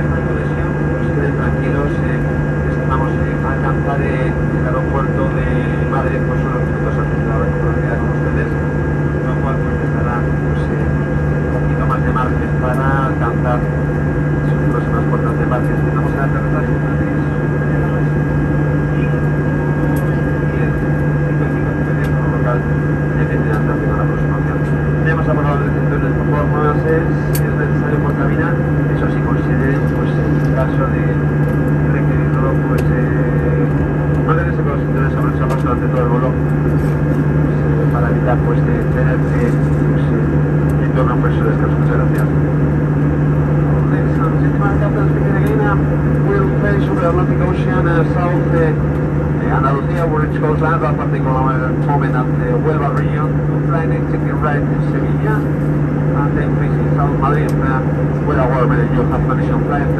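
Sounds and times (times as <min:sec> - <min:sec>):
airplane cabin drone: 0:00.0 - 0:59.9.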